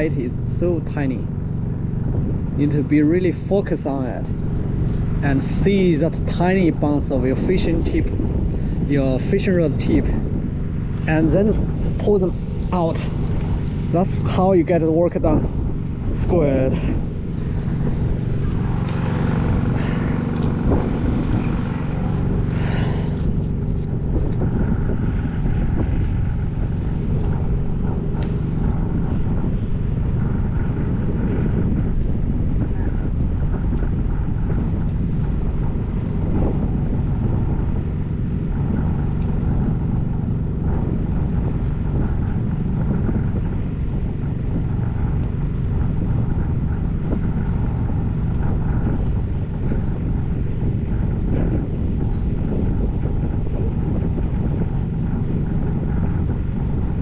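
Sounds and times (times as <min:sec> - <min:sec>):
faint hum: 0:00.0 - 0:57.0
low rumble: 0:00.0 - 0:57.0.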